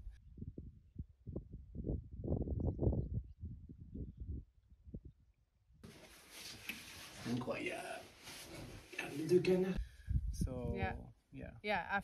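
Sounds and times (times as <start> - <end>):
wind buffeting microphone: 0.0 - 5.3, 9.8 - 11.1.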